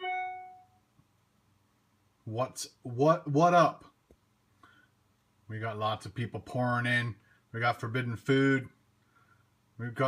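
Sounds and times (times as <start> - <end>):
chime ringing: 0.0 - 0.7.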